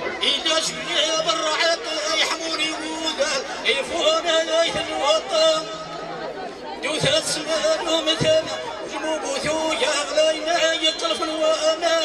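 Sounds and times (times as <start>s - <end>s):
man chanting through microphone: 0.0s - 6.0s, 6.8s - 12.0s.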